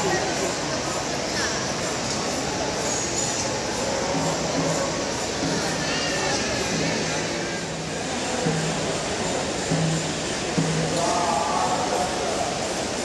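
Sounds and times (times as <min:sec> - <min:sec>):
dense crowd din: 0:00.0 - 0:13.0
voices: 0:00.0 - 0:13.0
music: 0:03.8 - 0:13.0.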